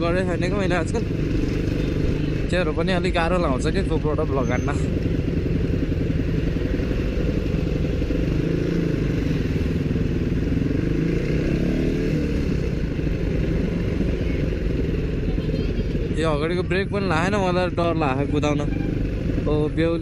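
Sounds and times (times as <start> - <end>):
dirt bike engine running: 0.0 - 20.0.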